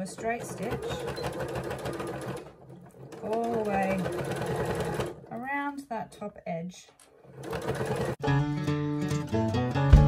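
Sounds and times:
electric sewing machine stitching: 0.0s - 5.4s, 7.1s - 8.2s.

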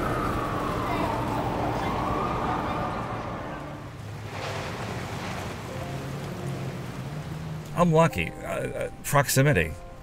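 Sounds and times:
water noise: 0.0s - 9.0s
wind: 0.0s - 10.0s.

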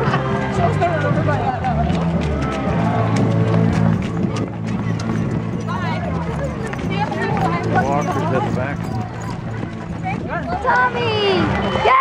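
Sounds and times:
footsteps on asphalt: 0.0s - 11.6s
overlapping chatter: 0.0s - 12.0s.

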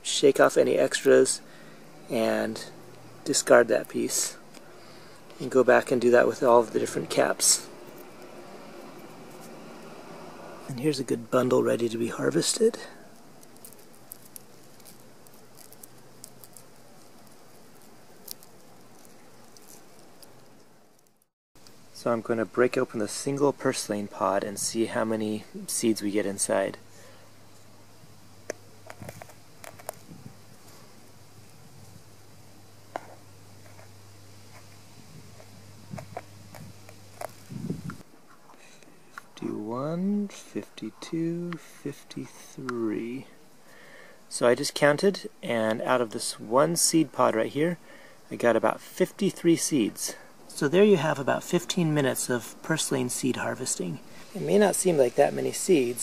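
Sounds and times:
steady background hiss: 0.0s - 56.0s
steady low hum: 0.0s - 56.0s
fingers rustling seed pods: 2.2s - 10.0s, 10.7s - 21.3s, 28.5s - 32.0s, 32.8s - 38.0s
seeds pattering on plastic lid: 11.9s - 21.2s.

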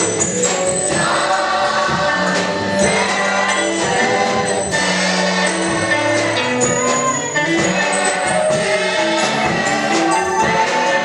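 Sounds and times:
group singing gospel song: 0.0s - 11.0s
instrumental backing: 0.0s - 11.0s.

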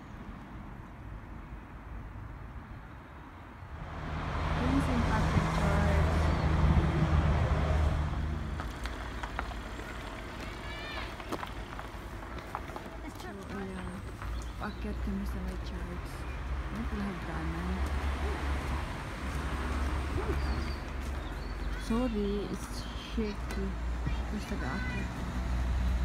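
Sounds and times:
vehicle passing by: 3.7s - 12.6s, 13.5s - 26.0s.

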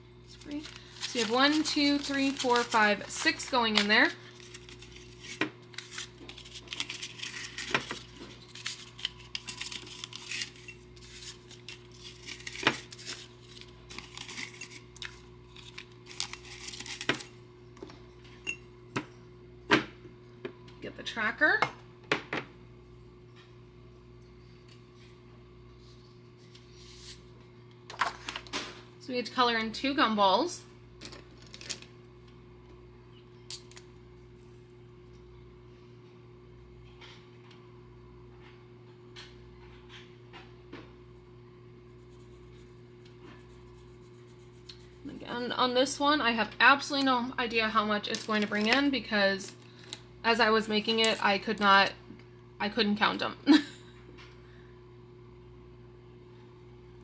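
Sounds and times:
faint steady hum: 0.0s - 57.0s
paper bills rustling: 0.4s - 14.8s, 15.5s - 17.2s.

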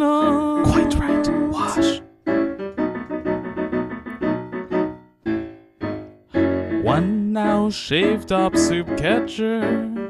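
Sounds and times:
person singing: 0.0s - 2.0s, 6.8s - 10.0s
piano chords in steady rhythm: 0.0s - 10.0s.

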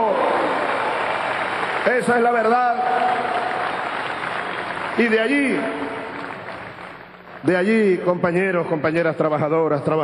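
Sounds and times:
large crowd applauding: 0.0s - 8.2s.

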